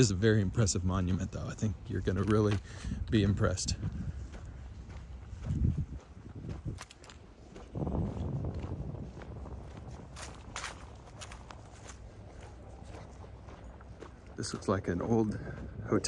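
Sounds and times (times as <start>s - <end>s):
footsteps on concrete: 0.0s - 16.0s
scuffs and clicks: 1.9s - 8.4s, 9.2s - 15.8s.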